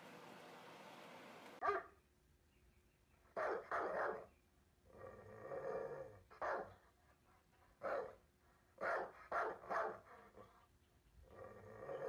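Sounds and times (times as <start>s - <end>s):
dog barking: 1.6s - 2.0s, 3.4s - 4.3s, 6.4s - 6.8s, 7.8s - 8.2s, 8.8s - 10.1s.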